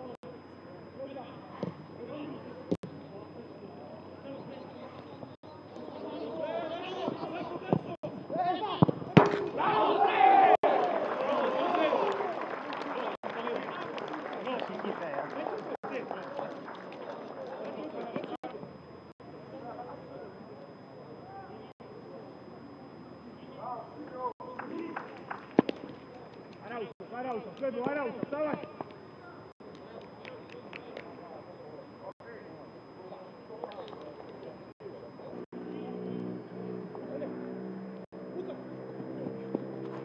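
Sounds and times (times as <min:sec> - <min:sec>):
players calling out: 0:00.0 - 0:22.4
footballers shouting: 0:05.6 - 0:18.4
football being kicked: 0:08.8 - 0:09.6.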